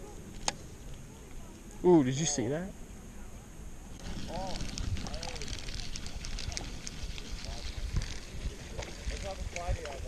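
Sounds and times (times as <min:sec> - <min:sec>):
distant voices talking: 0:00.0 - 0:10.0
wind rumbling on microphone: 0:03.9 - 0:10.0.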